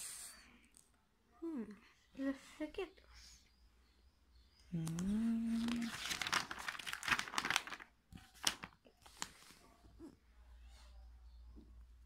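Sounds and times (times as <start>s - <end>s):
magazine pages rustling: 5.0s - 9.7s.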